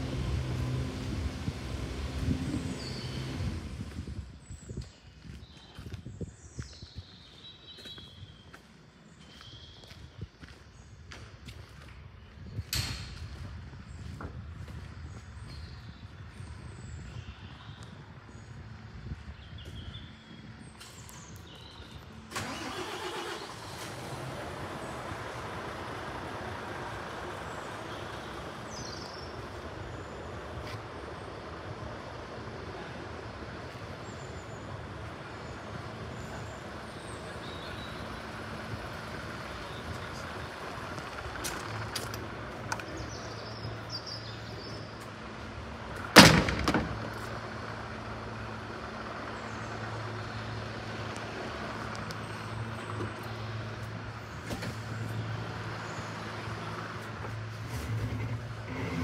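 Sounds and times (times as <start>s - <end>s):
diesel engine idling: 0.0s - 4.4s, 21.0s - 59.0s
loud clunk: 46.2s - 47.2s.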